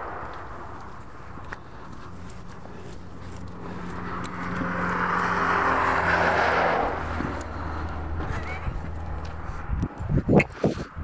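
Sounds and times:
vehicle passing by: 0.0s - 10.4s.

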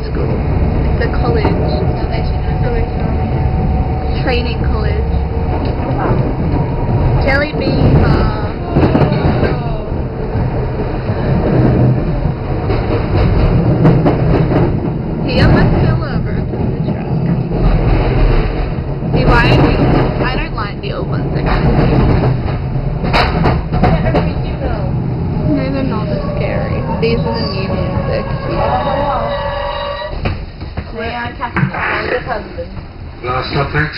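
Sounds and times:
indistinct voices: 0.0s - 18.0s, 19.0s - 23.0s, 23.7s - 30.2s
tram wheels rumbling on rails: 0.0s - 33.9s.

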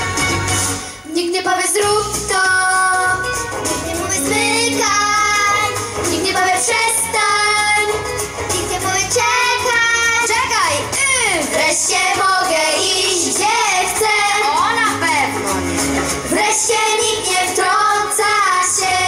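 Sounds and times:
children singing into microphones: 3.9s - 15.4s, 16.3s - 19.0s.

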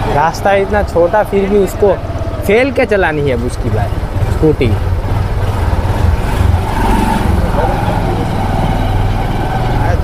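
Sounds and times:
motorbike engine rumbling: 0.0s - 10.0s.

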